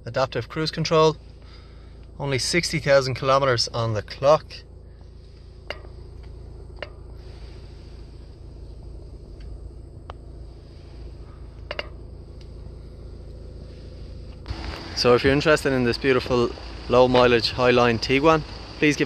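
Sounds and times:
low hum in car cabin: 0.0 - 19.0.

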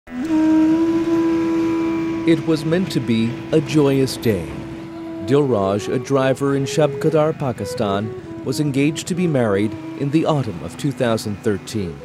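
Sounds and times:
sustained low music note: 0.2 - 11.0.

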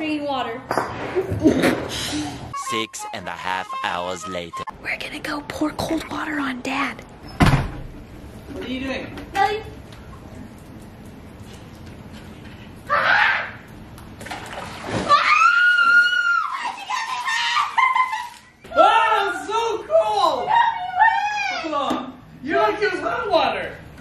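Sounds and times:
people screaming and shrieking: 12.9 - 13.6, 15.0 - 19.2, 20.0 - 21.7
water splash: 14.2 - 15.3.

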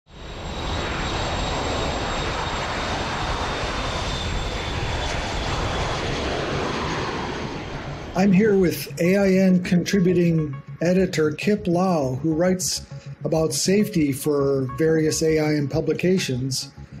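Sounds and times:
faint high whine: 0.1 - 11.2
aircraft engine rushing: 0.1 - 16.0.

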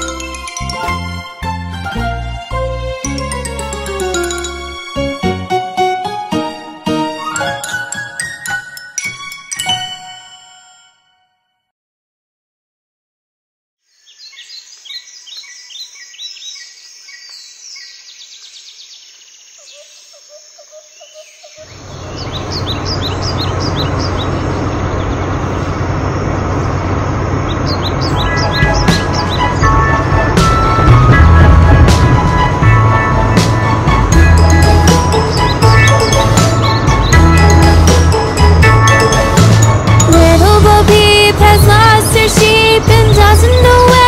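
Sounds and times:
music: 0.0 - 11.7, 28.1 - 44.0
birds chirping: 13.9 - 40.9
loud low rumble: 21.8 - 38.9.

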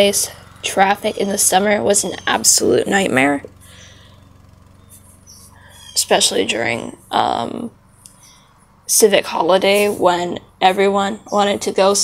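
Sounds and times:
low steady outdoor hum: 0.0 - 12.0
faint bird calls: 0.1 - 6.9, 8.1 - 8.6.

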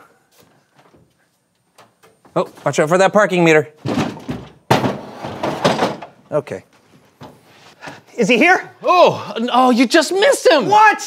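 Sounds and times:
crash clattering: 3.8 - 6.2.

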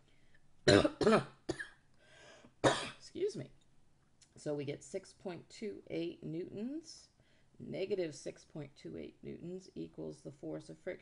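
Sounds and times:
woman coughing: 0.7 - 1.8, 2.6 - 3.0.

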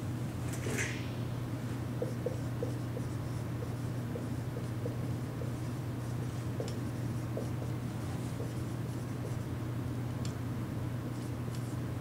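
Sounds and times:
steady low hum: 0.0 - 12.0
marker writing on whiteboard: 2.0 - 9.5.

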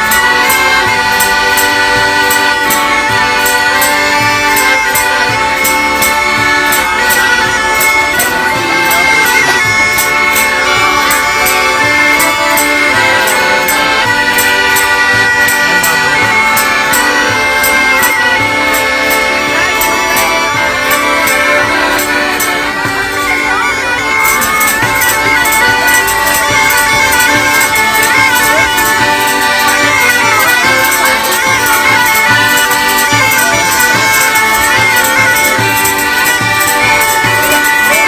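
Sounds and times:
bagpipe drone: 0.0 - 38.0
bagpipe reed melody: 0.0 - 38.0.

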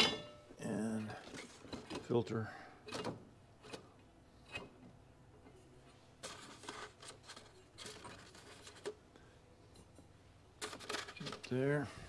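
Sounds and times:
soft paper rustles: 6.2 - 9.0.

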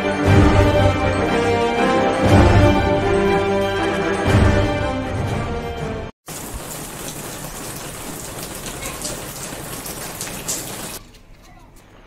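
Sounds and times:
steady rain falling: 6.3 - 11.0.

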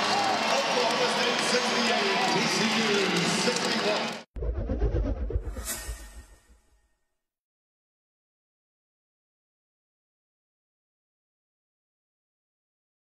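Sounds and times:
crowd cheering and shouting: 0.0 - 4.3
brief whoosh: 4.4 - 7.0.

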